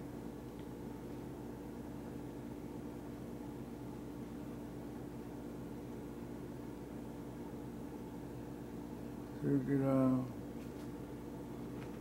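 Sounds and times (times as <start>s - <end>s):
constant hiss: 0.0s - 12.0s
steady low hum: 0.0s - 12.0s.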